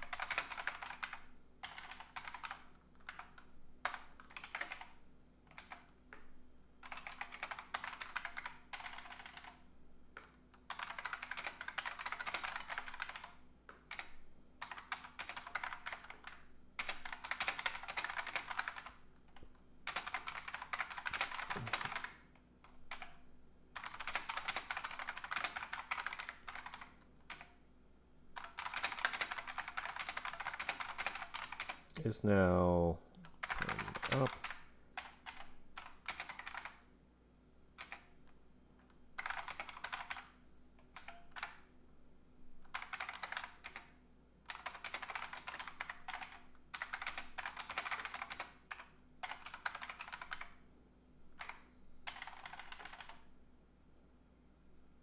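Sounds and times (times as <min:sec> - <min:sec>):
keyboard typing clicks: 0:00.0 - 0:09.6, 0:10.2 - 0:23.2, 0:23.8 - 0:27.6, 0:28.4 - 0:32.0, 0:33.2 - 0:36.8, 0:37.8 - 0:38.1, 0:39.2 - 0:41.7, 0:42.6 - 0:43.9, 0:44.5 - 0:50.6, 0:51.4 - 0:53.3.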